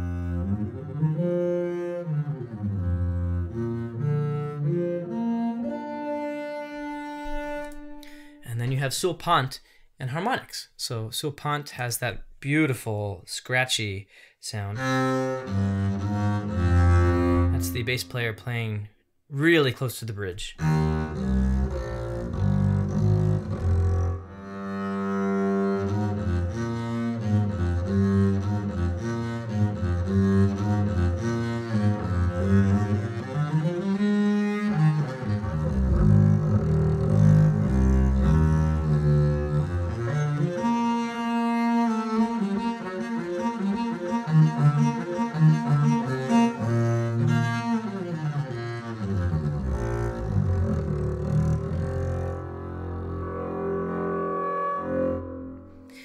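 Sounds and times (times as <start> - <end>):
bowed double bass with scratchy tone: 0.0 - 9.1, 14.8 - 18.4, 20.6 - 56.0.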